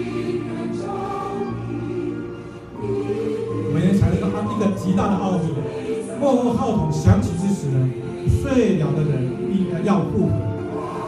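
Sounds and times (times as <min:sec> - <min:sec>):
slow choral music: 0:00.0 - 0:11.0.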